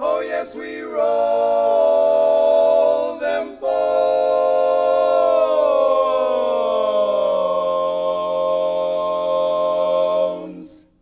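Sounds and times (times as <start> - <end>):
men singing a cappella chord: 0.0 - 11.0.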